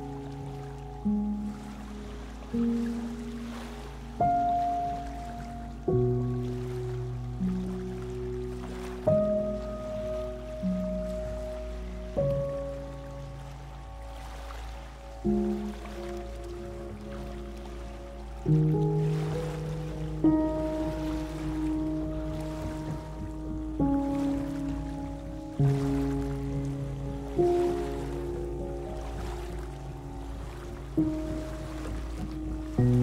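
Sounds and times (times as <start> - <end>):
low steady hum: 0.0 - 33.0
ocean waves: 0.0 - 33.0
soft piano music: 0.0 - 33.0.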